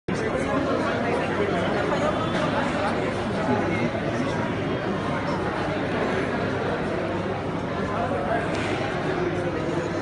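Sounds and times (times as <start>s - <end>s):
crowd chatter in a large hall: 0.1s - 10.0s.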